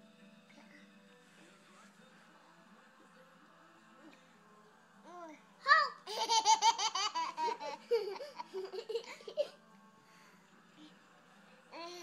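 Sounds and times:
baby laughing: 0:05.7 - 0:09.6.

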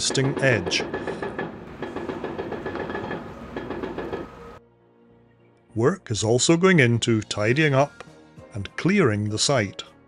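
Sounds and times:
hydraulic breaker hammering concrete: 0:00.0 - 0:04.4.

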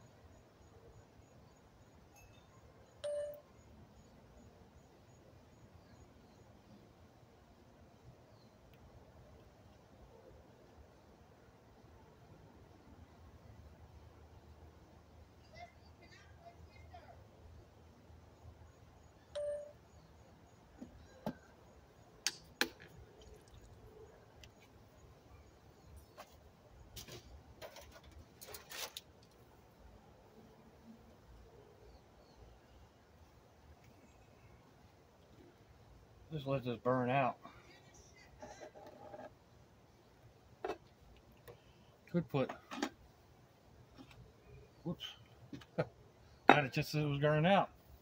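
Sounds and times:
short ringing tone: 0:02.2 - 0:03.4, 0:19.4 - 0:19.8.

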